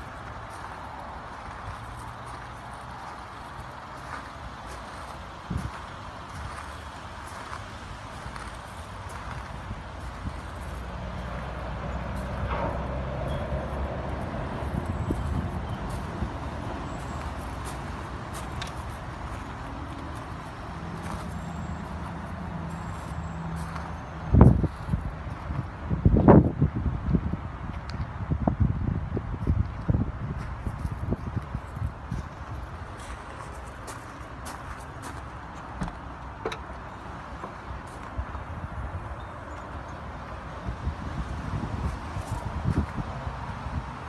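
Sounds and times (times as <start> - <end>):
footsteps on gravel: 0.0 - 11.4, 13.8 - 25.7, 30.4 - 38.5
wind on microphone: 12.0 - 16.8, 24.3 - 32.6, 40.5 - 44.0.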